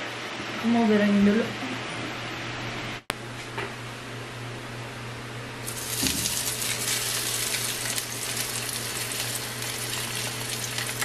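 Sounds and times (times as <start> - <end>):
hot oil sizzling: 5.6 - 11.0.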